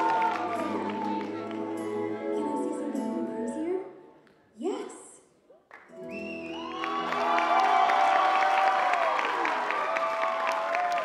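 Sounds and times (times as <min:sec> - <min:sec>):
audience clapping and cheering: 0:00.0 - 0:02.4, 0:05.7 - 0:11.0.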